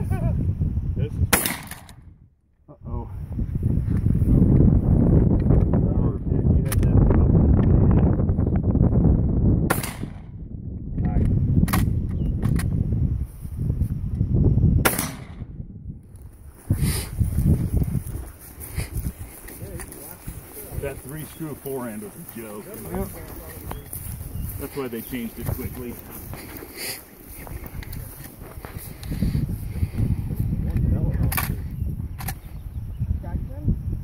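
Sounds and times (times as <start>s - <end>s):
sharp gunshots: 1.3s - 2.0s, 9.6s - 10.4s, 14.8s - 15.5s.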